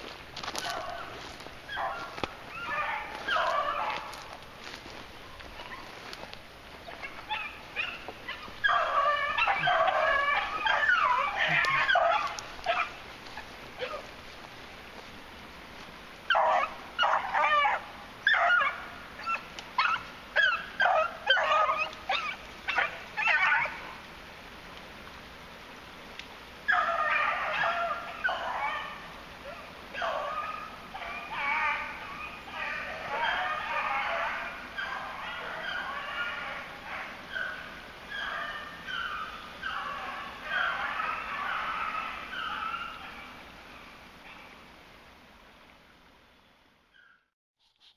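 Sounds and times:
hounds baying: 0.4 - 14.1, 16.3 - 23.9, 26.7 - 44.6.

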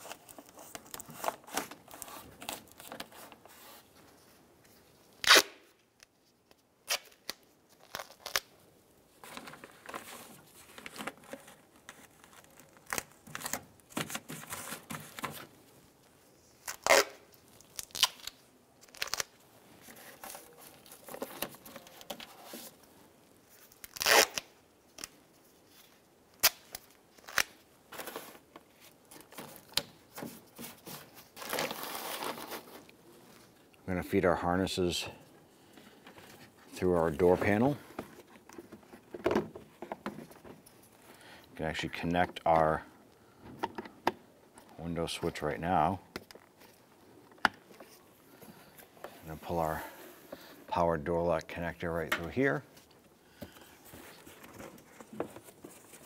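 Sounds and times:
duct tape ripping: 5.2 - 5.7, 6.8 - 8.5, 16.6 - 19.4, 23.7 - 25.2, 26.3 - 28.2
plastic sheet crinkling: 26.4 - 33.5.

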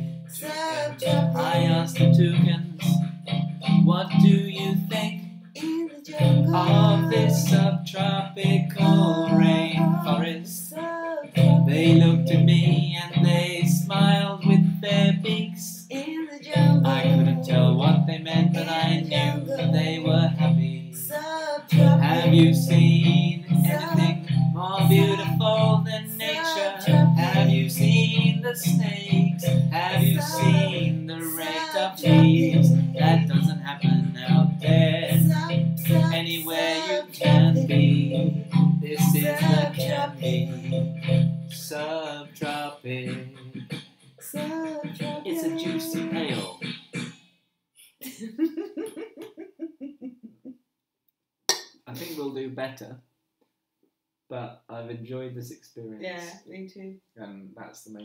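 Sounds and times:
instrumental backing with bass chords: 0.0 - 5.6, 6.2 - 10.4, 11.4 - 15.5, 16.5 - 21.0, 21.7 - 41.7
man and woman singing: 0.3 - 3.0, 3.6 - 46.6.

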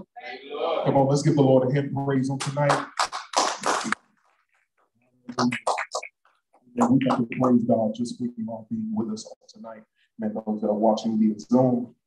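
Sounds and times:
congregation clapping: 2.4 - 4.2, 5.4 - 6.1.

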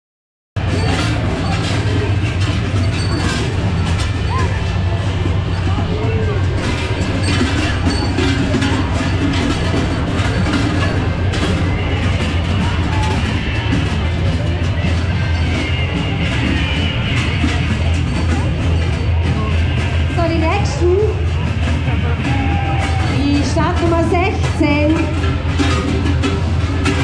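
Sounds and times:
loud music: 0.6 - 27.0
people's voices: 0.6 - 27.0
scattered clicks and knocks: 0.6 - 27.0.

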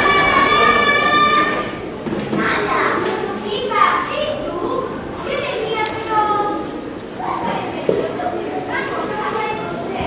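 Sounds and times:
children speaking: 0.0 - 10.0.

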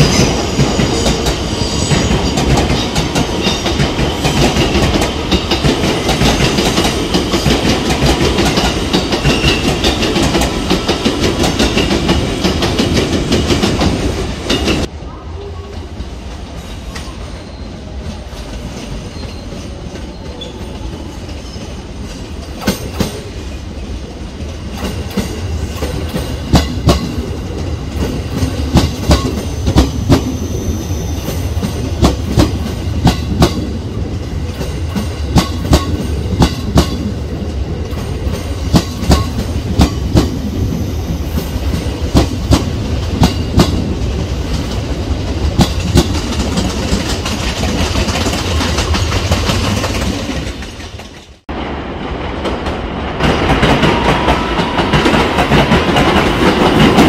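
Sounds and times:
train wheels clacking over joints: 0.0 - 14.9, 31.2 - 37.2, 37.8 - 51.4
train rumble: 0.0 - 57.0.

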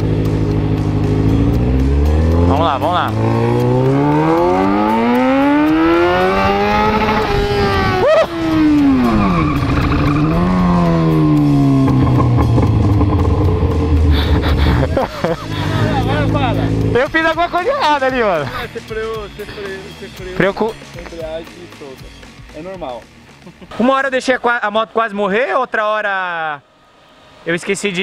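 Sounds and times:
motorcycle engine revving: 0.0 - 17.4.

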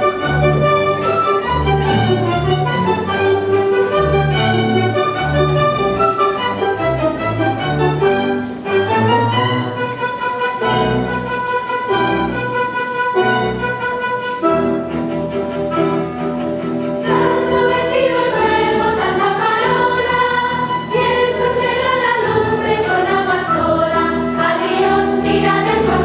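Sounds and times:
orchestra playing: 0.0 - 26.0
chorus singing: 16.6 - 26.0.

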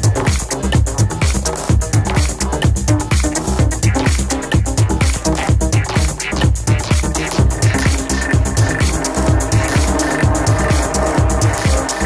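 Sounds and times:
progressive house music: 0.0 - 12.0.

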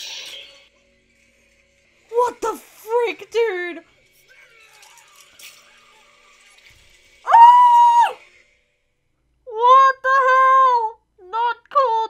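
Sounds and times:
loud high-pitched scream: 7.2 - 8.2.

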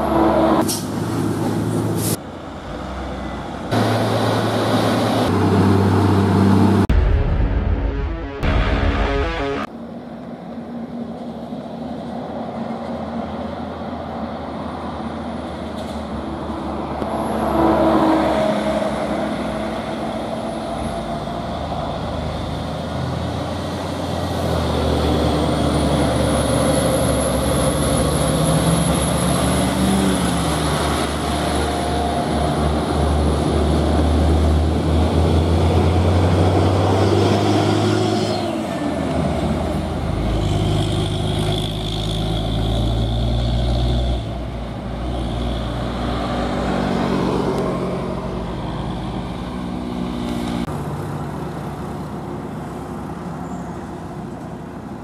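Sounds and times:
truck diesel engine labouring: 0.0 - 7.0, 13.0 - 53.4.

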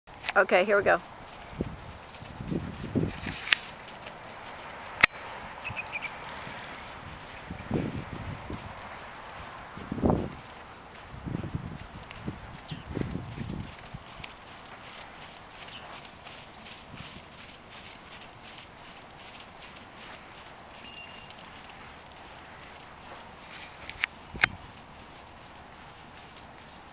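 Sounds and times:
hoofbeats in sand: 0.1 - 26.9.

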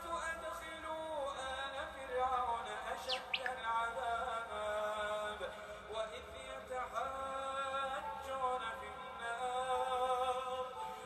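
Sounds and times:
person chanting: 0.0 - 11.0
quick high chirps: 3.0 - 3.7.

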